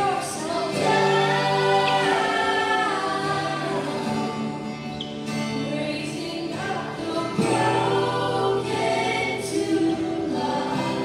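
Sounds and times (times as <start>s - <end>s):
acoustic guitar: 0.0s - 11.0s
voices singing together: 0.0s - 11.0s.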